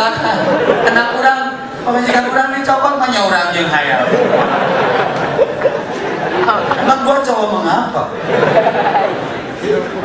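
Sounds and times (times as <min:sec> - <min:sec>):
audience chatter: 0:00.0 - 0:10.0.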